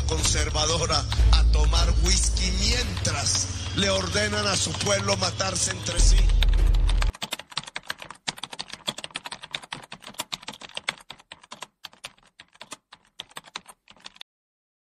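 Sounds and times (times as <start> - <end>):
rapid irregular clicking: 0.0 - 14.2.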